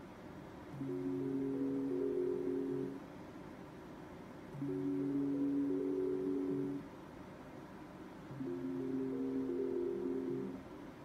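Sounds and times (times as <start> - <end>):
slot machine electronic tune: 8.4 - 10.6.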